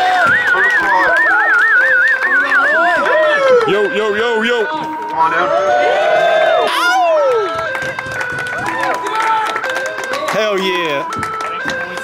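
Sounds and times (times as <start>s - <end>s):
voices: 0.0s - 7.0s
music: 0.0s - 12.0s.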